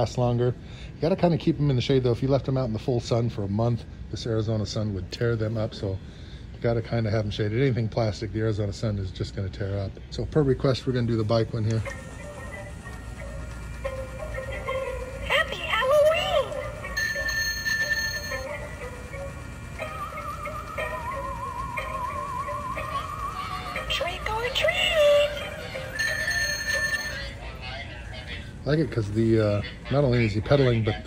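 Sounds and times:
spooky music from small speaker: 0:11.7 - 0:28.6
long warbling tone: 0:11.9 - 0:27.4
short ringing tone: 0:16.8 - 0:19.9, 0:25.6 - 0:27.4.

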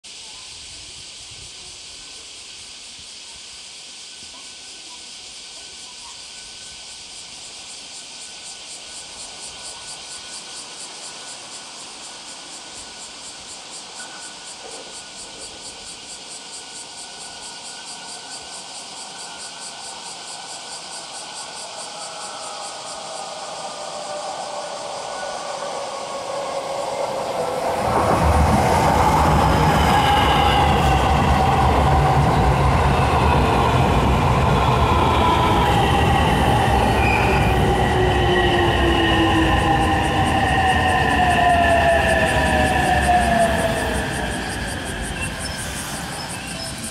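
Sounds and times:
train wheels rumbling on rail: 0:08.2 - 0:46.9
whining tones gliding down: 0:21.5 - 0:46.9.

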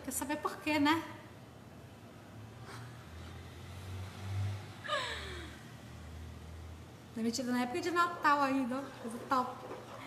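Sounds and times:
woman sighing: 0:04.8 - 0:05.6.

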